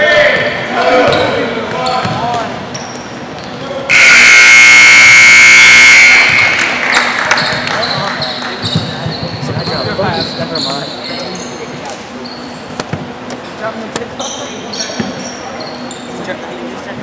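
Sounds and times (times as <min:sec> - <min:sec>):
sneaker squeaks: 0:01.0 - 0:03.7, 0:06.3 - 0:13.1, 0:14.2 - 0:16.2.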